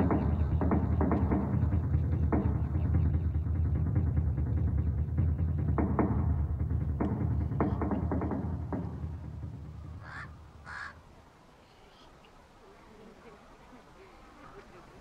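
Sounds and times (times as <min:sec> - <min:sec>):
percussive hits: 0:00.0 - 0:10.3
film soundtrack music: 0:00.0 - 0:11.0
short harsh calls: 0:09.7 - 0:11.0.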